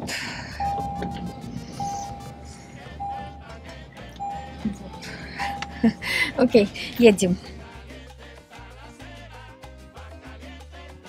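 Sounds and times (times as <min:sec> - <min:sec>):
low rumble: 0:00.0 - 0:07.9
car warning chime: 0:00.5 - 0:07.3.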